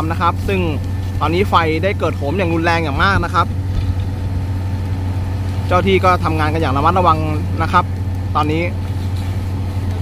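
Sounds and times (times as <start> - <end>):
fire truck engine humming: 0.0 - 10.0.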